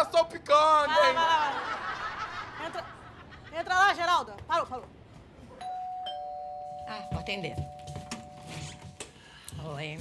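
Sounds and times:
two-tone doorbell chiming: 5.6s - 8.8s.

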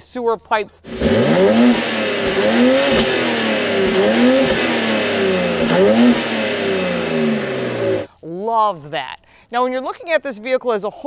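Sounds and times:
car engine revving: 0.9s - 8.1s.

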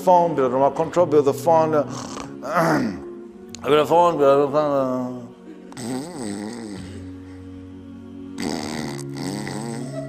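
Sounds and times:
wordless voice singing: 0.0s - 10.0s.

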